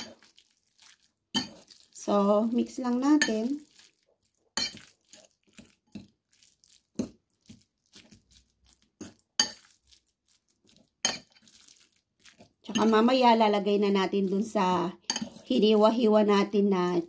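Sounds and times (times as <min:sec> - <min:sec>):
fork scraping and clinking bowl: 0:00.0 - 0:00.4, 0:01.3 - 0:01.8, 0:04.6 - 0:06.1, 0:09.0 - 0:10.0, 0:10.7 - 0:13.1, 0:15.0 - 0:15.6.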